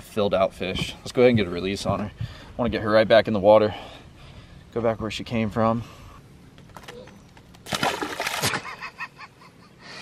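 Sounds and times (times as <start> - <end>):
fish splashing into water: 7.6 - 8.8.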